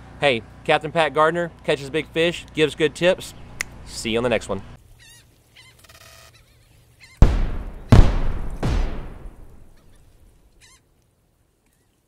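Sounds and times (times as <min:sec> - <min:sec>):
heavy booming hits: 0:07.2 - 0:09.8.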